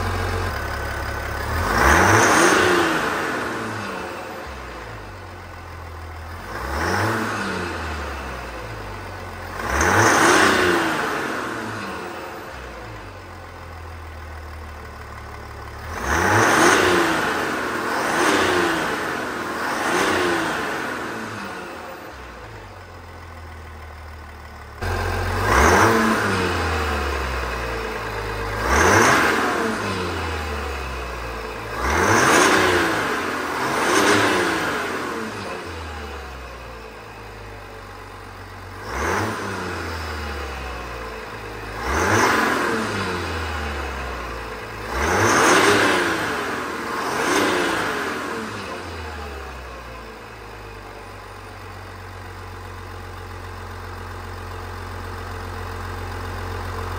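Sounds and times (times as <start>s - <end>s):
diesel engine revving: 0.0s - 56.9s.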